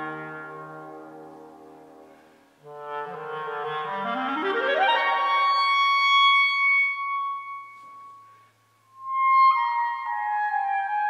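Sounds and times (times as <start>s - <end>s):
solo clarinet: 0.0s - 11.0s.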